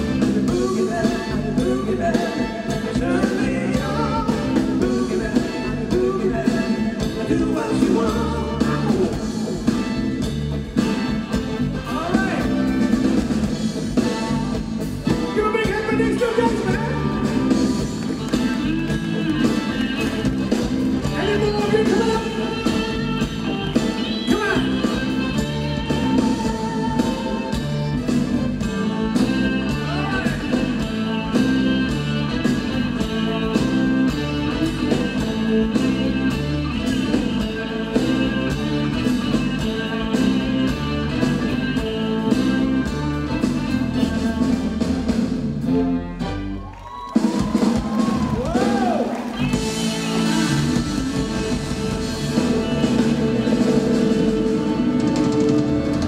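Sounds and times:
bass guitar: 0:00.0 - 0:56.0
electric guitar: 0:00.0 - 0:56.0
keyboard: 0:00.0 - 0:56.0
live band playing dance music: 0:00.0 - 0:56.0.

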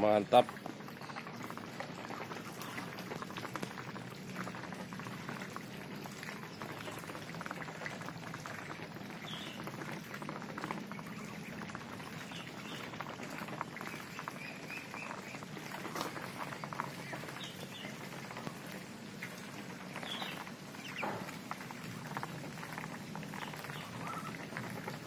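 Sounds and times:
ducks dabbling in mud: 0:00.0 - 0:25.0.

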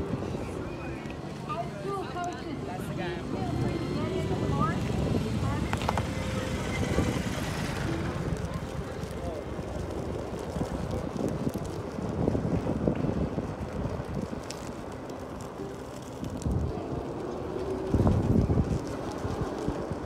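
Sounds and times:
faint voices: 0:00.0 - 0:20.0
scooter tyre rumble on asphalt: 0:00.0 - 0:20.0
wind on microphone: 0:00.0 - 0:20.0.

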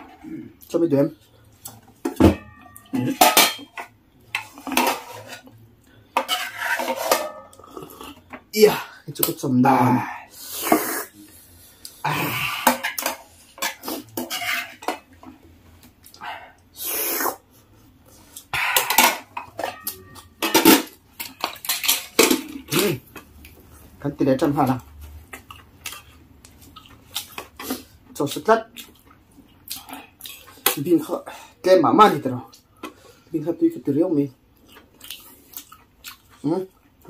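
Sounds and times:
metal utensils clinking on dishes: 0:02.0 - 0:05.5, 0:06.1 - 0:07.6, 0:12.6 - 0:15.1, 0:18.5 - 0:23.0
spoons clattering against plates: 0:02.0 - 0:05.5, 0:06.1 - 0:07.6, 0:12.6 - 0:15.2, 0:18.5 - 0:23.3.

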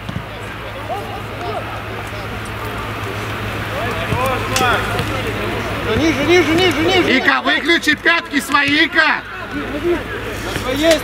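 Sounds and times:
low hum: 0:00.0 - 0:07.2
players shouting: 0:00.0 - 0:11.0.

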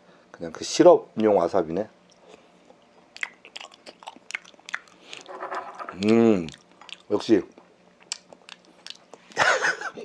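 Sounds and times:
wet chewing mouth clicks: 0:02.8 - 0:05.3, 0:05.9 - 0:07.1, 0:08.0 - 0:09.4.

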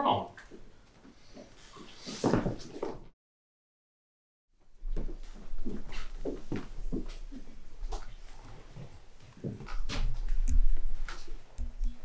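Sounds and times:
footsteps on wooden stage: 0:04.8 - 0:10.3.

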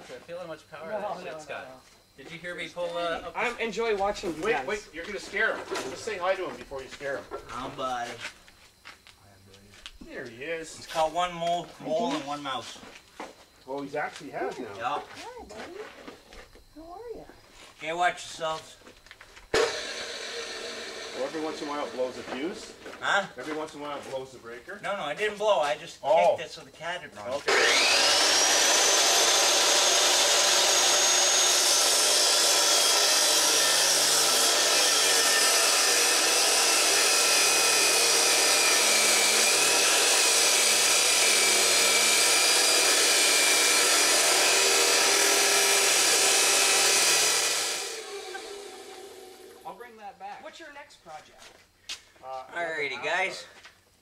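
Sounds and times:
chop saw motor running: 0:19.5 - 0:23.1, 0:27.4 - 0:49.7.

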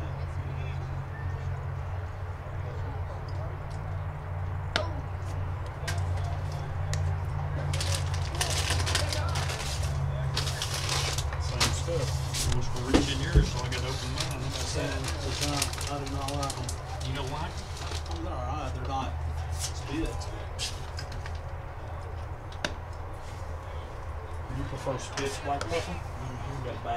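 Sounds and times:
spectators talking: 0:00.0 - 0:26.9.

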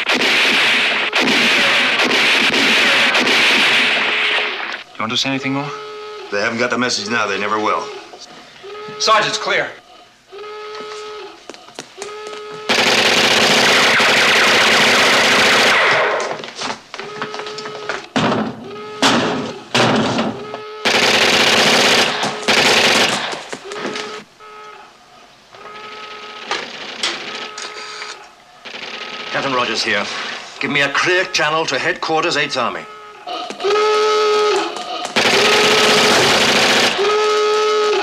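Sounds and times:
machine-gun fire: 0:00.0 - 0:04.8, 0:12.7 - 0:16.4, 0:20.8 - 0:23.5, 0:25.8 - 0:27.6, 0:28.6 - 0:30.0, 0:35.1 - 0:37.4
single gunshots: 0:00.0 - 0:04.8, 0:12.7 - 0:16.4, 0:21.6 - 0:23.5
short steady tones: 0:32.7 - 0:38.0.

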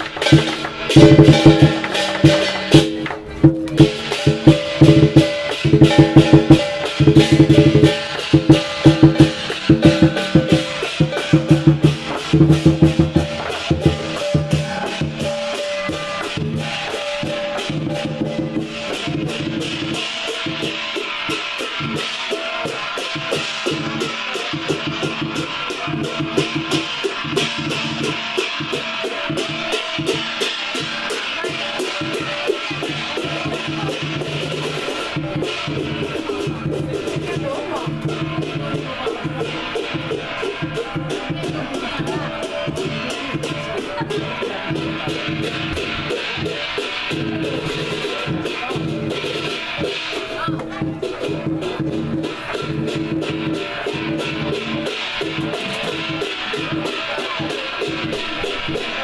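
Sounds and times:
big drum beating: 0:00.0 - 0:59.0
cymbals clattering: 0:00.0 - 0:59.0.

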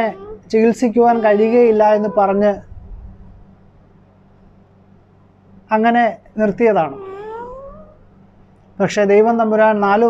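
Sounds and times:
high cat-like cry: 0:00.0 - 0:02.5, 0:06.9 - 0:08.0.

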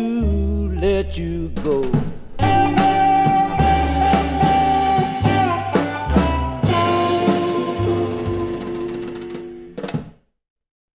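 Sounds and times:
blues band playing: 0:00.0 - 0:10.1.

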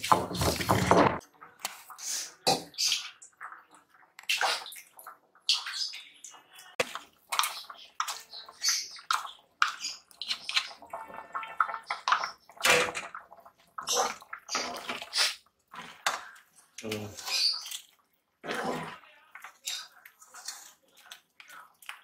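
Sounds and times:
curry sloshing in a pot: 0:00.0 - 0:22.0.

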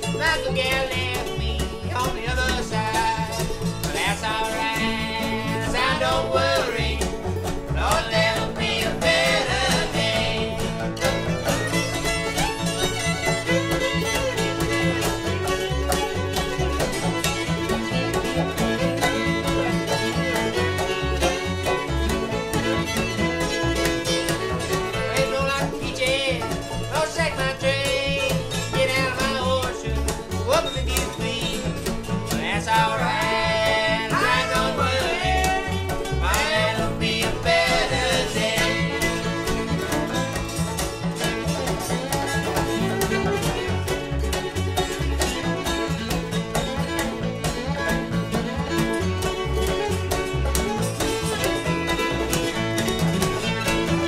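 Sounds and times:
banjo: 0:00.0 - 0:54.0
fiddle melody: 0:00.0 - 0:54.0
strummed guitar: 0:00.0 - 0:54.0.

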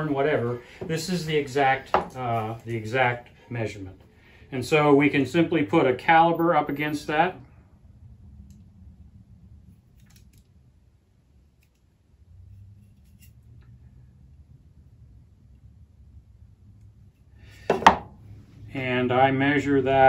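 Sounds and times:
low room hum: 0:00.0 - 0:20.0
wooden block knocking on table: 0:17.7 - 0:18.1.

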